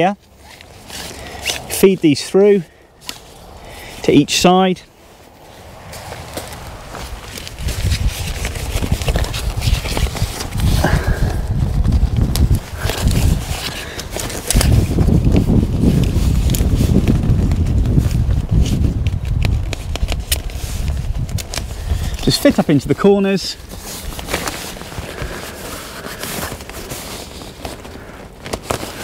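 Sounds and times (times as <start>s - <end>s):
tent poles clicking: 0.0s - 2.1s, 3.0s - 4.1s, 5.9s - 29.0s
fabric rustling and flapping: 0.0s - 4.2s, 4.9s - 29.0s.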